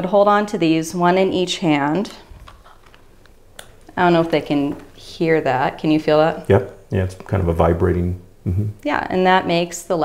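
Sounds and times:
handling noise: 2.0 - 5.7.

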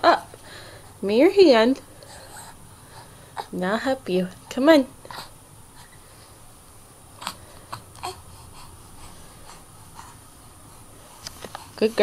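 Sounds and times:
infant vocal sounds: 7.2 - 10.2.

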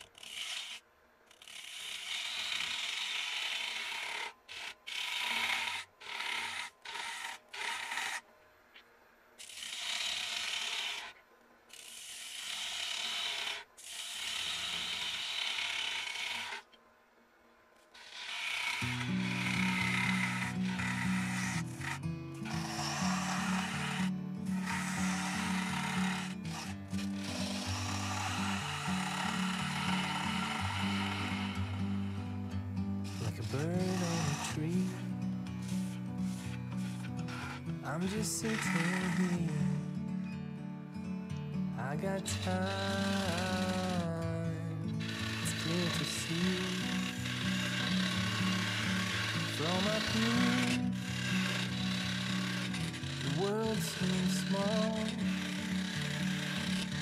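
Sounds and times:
lathe tool scraping wood bowl: 0.0 - 8.2, 9.4 - 16.7, 18.0 - 40.3, 41.6 - 57.0
background music with low notes: 18.9 - 57.0.

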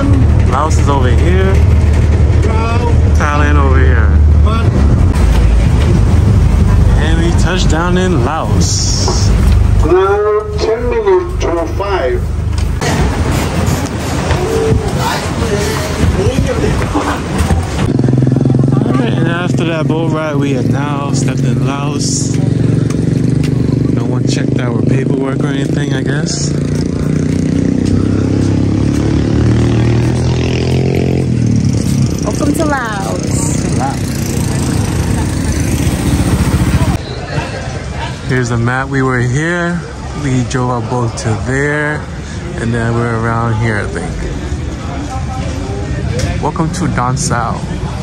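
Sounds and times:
boat engine running: 0.0 - 25.9, 26.6 - 37.0.

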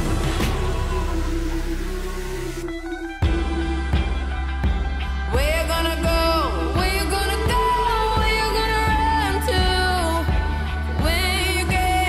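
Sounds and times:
instrumental pop music: 0.0 - 12.0.

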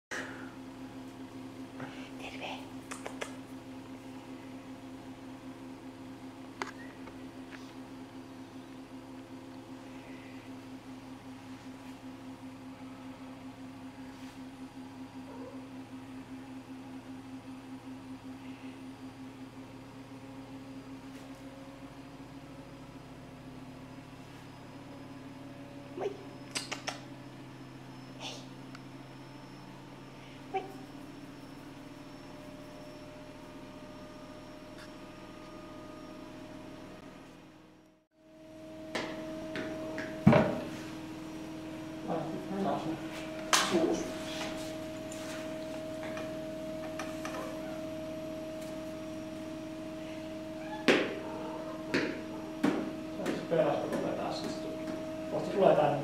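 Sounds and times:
pulsing mechanical hum: 0.1 - 56.0.

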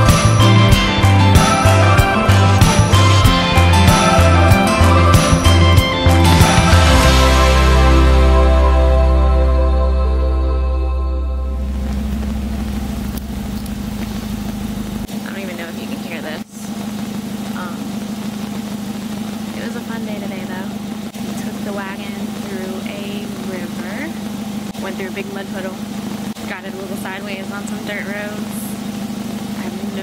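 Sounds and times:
background music: 0.0 - 12.5
steady low hum: 0.0 - 30.0.

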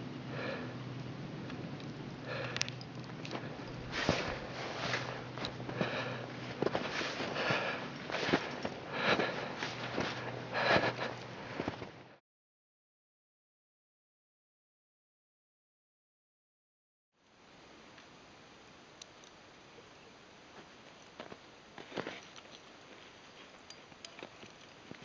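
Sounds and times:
faint low hum: 0.0 - 12.2
heavy breathing: 0.2 - 1.0, 2.2 - 12.0.

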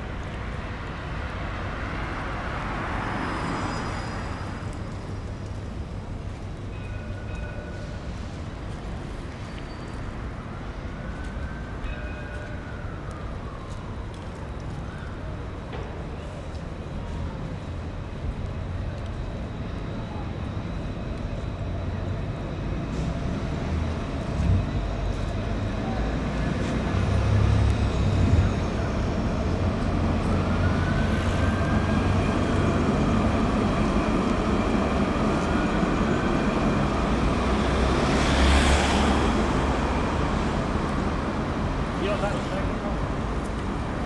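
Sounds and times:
city street traffic: 0.0 - 44.0
tram passing: 0.0 - 44.0.

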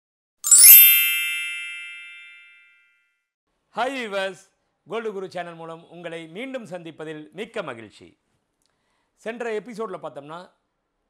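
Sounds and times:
bright chime ringing: 0.4 - 3.0.

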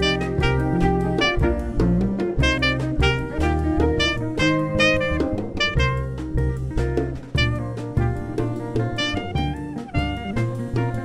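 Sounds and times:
acoustic-electric guitar: 0.0 - 11.0
alto saxophone melody: 0.0 - 11.0
drum kit with cymbals: 0.0 - 11.0
upright bass: 0.0 - 11.0.

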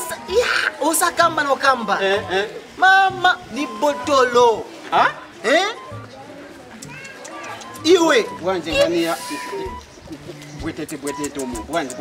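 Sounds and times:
men talking: 0.0 - 6.1, 7.0 - 12.0
bird calling: 3.4 - 12.0.

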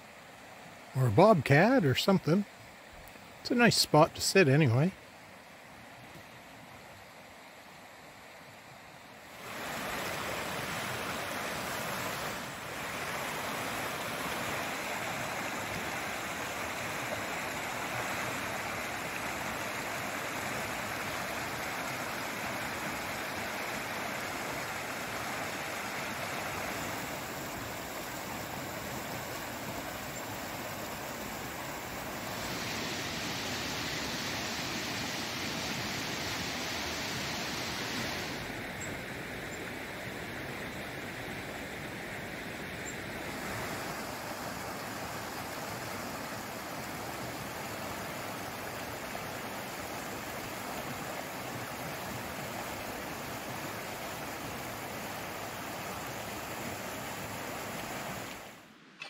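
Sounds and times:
river water rushing over rocks: 0.0 - 59.0.

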